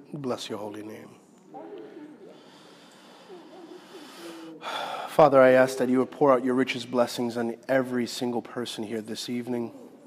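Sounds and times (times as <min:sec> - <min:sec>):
sharp intake of breath: 0:02.4 - 0:05.1.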